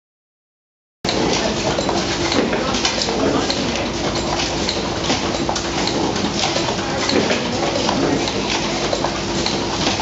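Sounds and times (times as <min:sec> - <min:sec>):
potting machine humming: 0:01.1 - 0:10.0.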